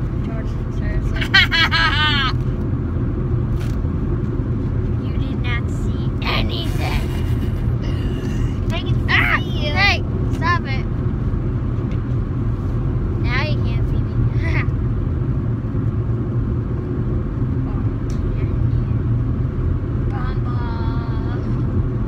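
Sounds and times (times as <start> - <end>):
car road and engine rumble: 0.0 - 22.0
child's voice: 8.7 - 10.8, 20.1 - 21.6.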